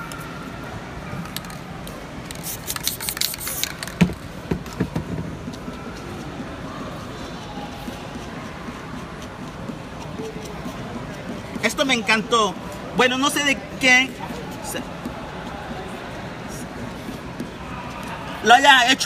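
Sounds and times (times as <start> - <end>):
spray paint can hissing: 2.3 - 4.2.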